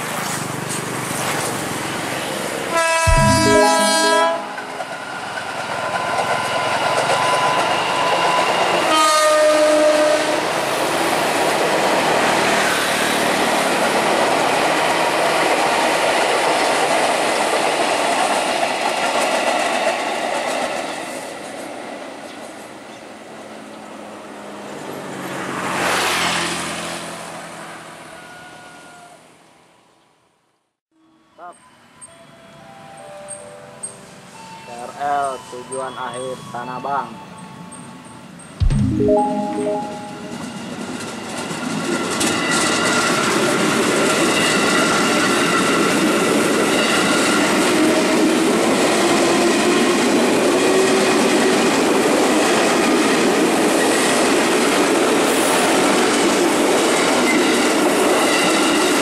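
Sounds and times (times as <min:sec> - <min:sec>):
train horn: 0:02.7 - 0:05.1, 0:08.9 - 0:10.5
train wheels on rail: 0:10.6 - 0:23.8.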